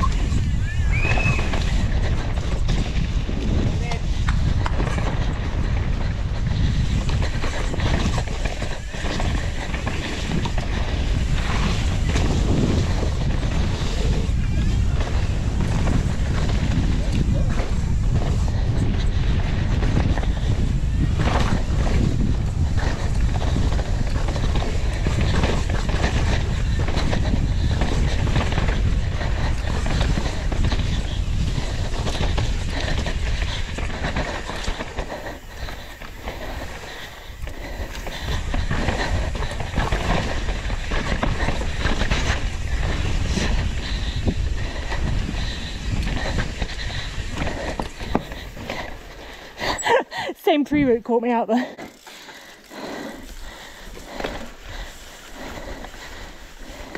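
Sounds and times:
bike knocking and rattling: 0.0 - 56.9
wind and tyres on dirt: 0.0 - 56.9.

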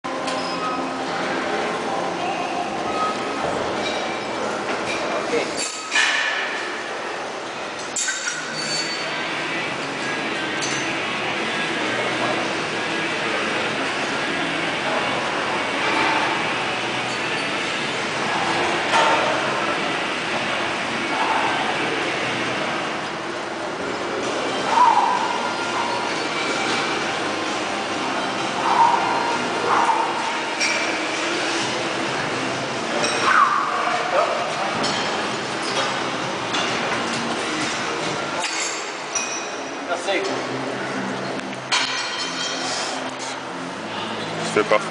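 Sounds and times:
distant chatter: 6.5 - 44.7.

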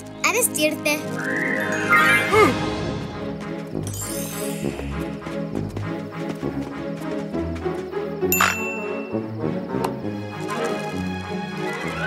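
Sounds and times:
cartoon background music: 0.0 - 12.0
bell-like ding: 8.4 - 9.1.

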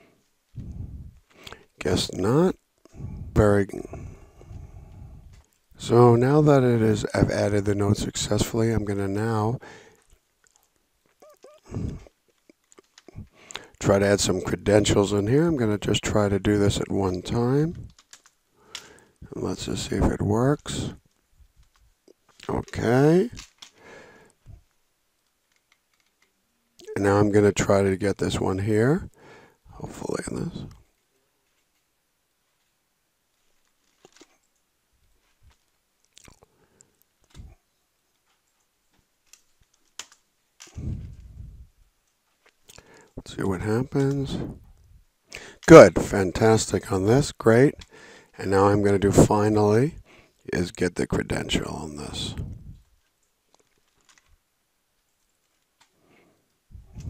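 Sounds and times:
short breath: 9.6 - 10.1, 13.2 - 13.8, 18.6 - 19.3, 23.7 - 24.6, 29.2 - 29.6, 42.8 - 43.2, 45.3 - 45.7, 47.9 - 48.4
soft mouth noises: 10.4 - 13.7, 35.4 - 37.6
faint clicks: 17.7 - 19.3.

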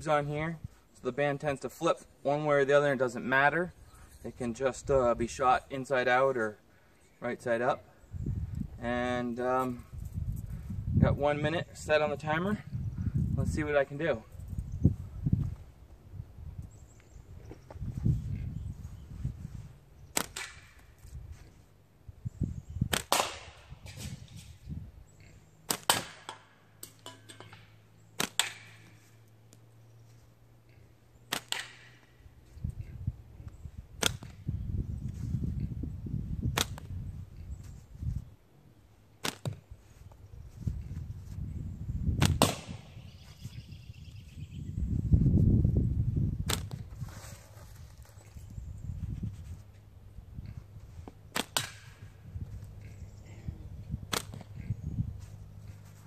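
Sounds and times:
slingshot bands snapping: 54.1 - 54.6.

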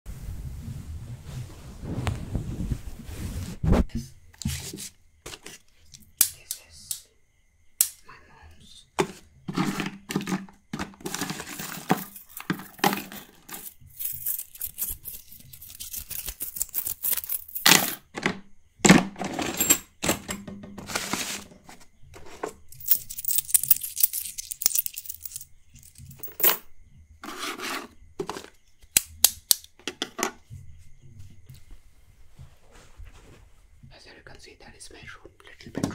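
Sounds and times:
short scrapes: 0.1 - 3.9
scratching and clicking: 10.8 - 17.6.

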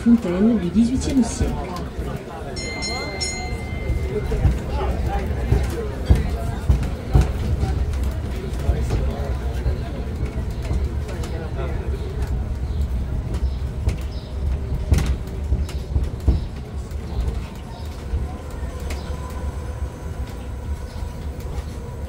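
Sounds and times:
road train rumbling on cobbles: 0.0 - 22.0.

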